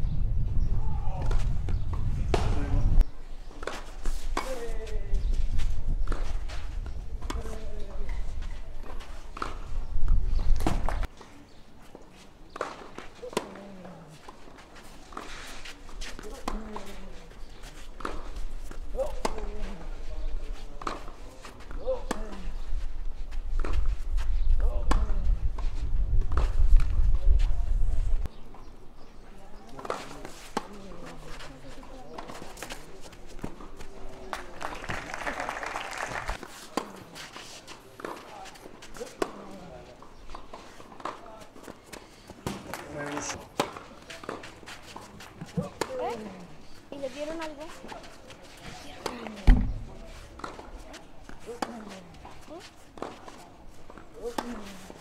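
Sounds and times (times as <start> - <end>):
tennis balls struck by rackets: 1.1 - 2.8, 6.0 - 11.6, 12.5 - 22.8, 23.5 - 25.2, 36.3 - 55.0
tennis balls bouncing on clay: 3.5 - 11.2, 12.5 - 27.1, 29.6 - 55.0.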